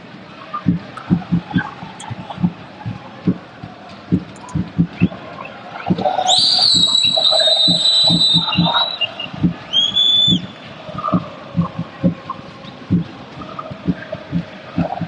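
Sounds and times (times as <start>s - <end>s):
stadium crowd: 0.0s - 15.0s
fan drum beating: 0.6s - 15.0s
long shrill whistles: 6.2s - 10.5s.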